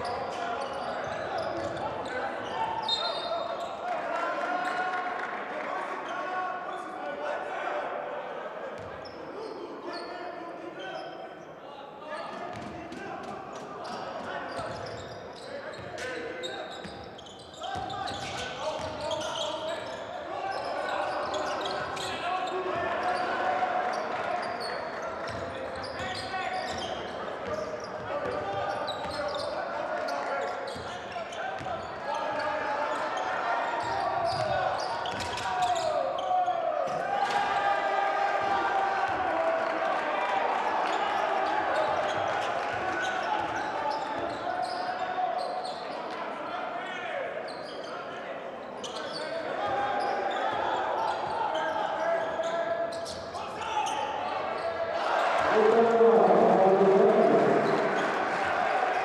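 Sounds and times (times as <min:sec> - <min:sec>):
crowd and player voices: 0:00.0 - 0:59.0.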